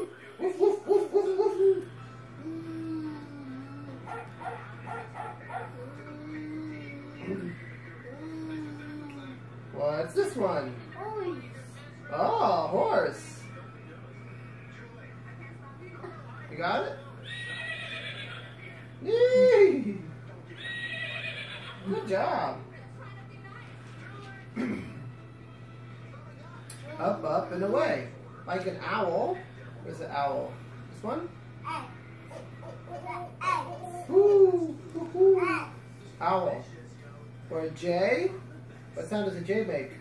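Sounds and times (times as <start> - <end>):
recorded horse whinny: 17.2 - 18.6, 20.6 - 21.8.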